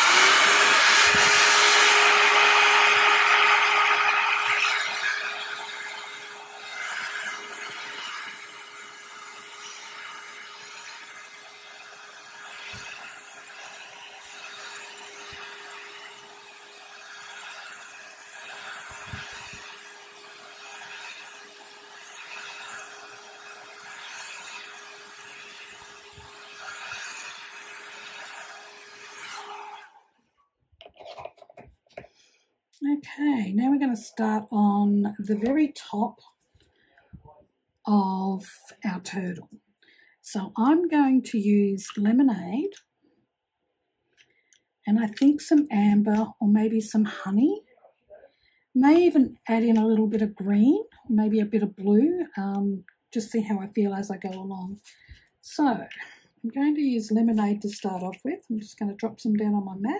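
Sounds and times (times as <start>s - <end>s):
hair dryer blowing: 0.0s - 30.0s.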